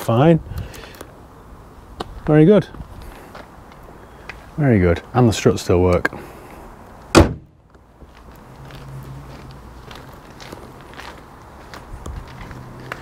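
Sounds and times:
faint footsteps: 2.0 - 4.5, 7.6 - 13.0
car bonnet slammed shut: 7.1 - 7.5.

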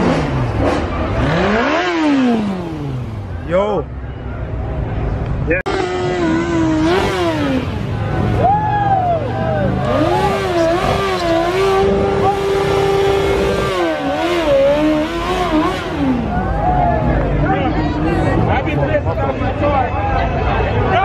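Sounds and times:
motorcycle engine revving hard: 0.0 - 3.4, 5.7 - 8.4, 9.7 - 16.4.

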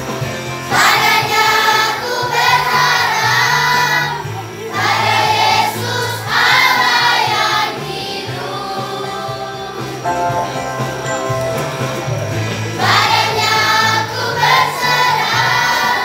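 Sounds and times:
children's choir singing: 0.7 - 16.0
instrumental accompaniment: 6.4 - 15.5.

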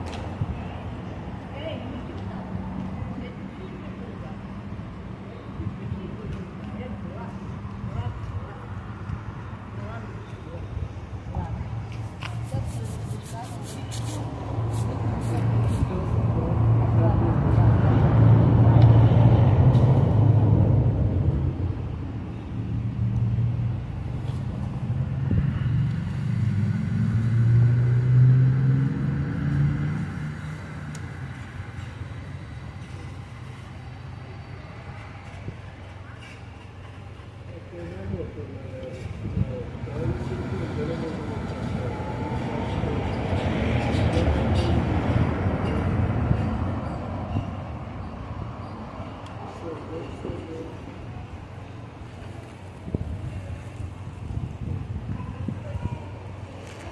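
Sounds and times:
vehicle passing: 1.0 - 35.5, 37.6 - 54.8.

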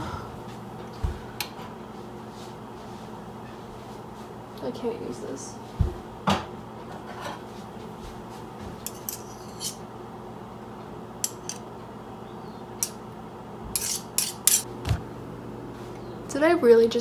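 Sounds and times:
kitchen utensils clicking: 13.8 - 14.7.

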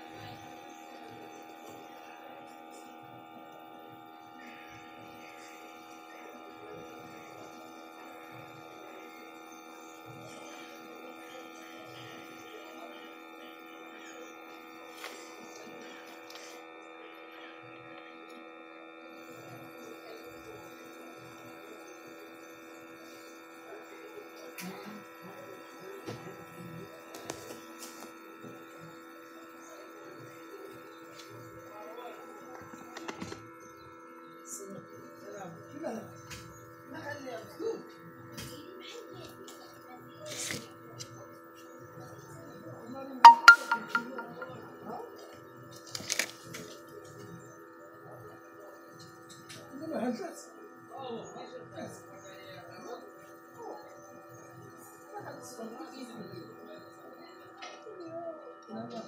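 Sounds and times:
steady multi-tone hum: 0.0 - 59.0.

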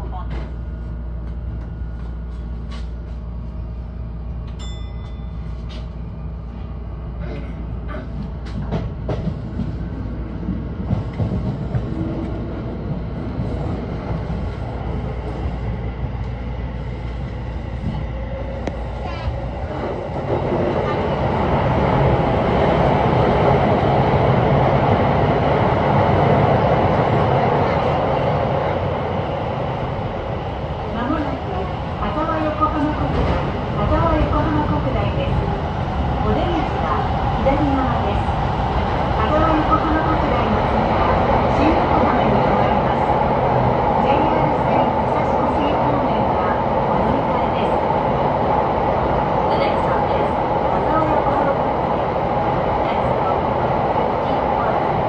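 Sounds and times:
electric train running on rails: 0.0 - 55.0.

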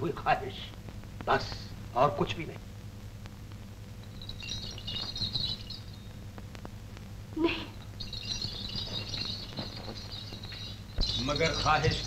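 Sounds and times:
low film soundtrack hum: 0.0 - 12.0
faint high chirping: 4.0 - 6.4, 7.4 - 12.0.

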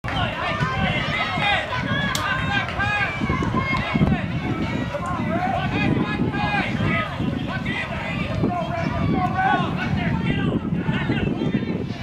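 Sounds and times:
many voices chattering: 0.0 - 12.0.

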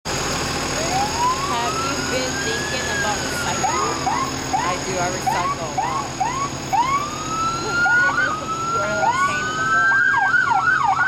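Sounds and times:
fire engine siren winding up: 0.1 - 11.0
truck engine rumble: 0.1 - 11.0.

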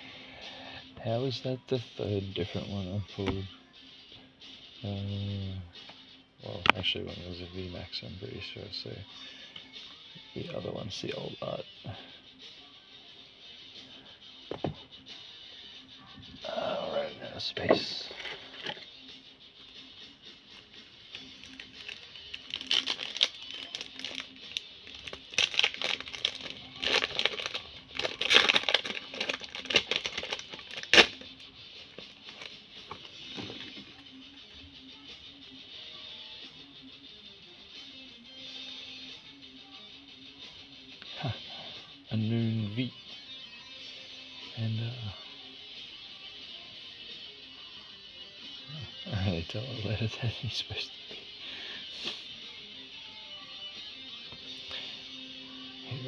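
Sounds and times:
background music: 0.0 - 56.0
wrapper tearing snap: 21.2 - 31.3
foil wrapper crinkling: 21.2 - 31.4, 32.0 - 33.7.

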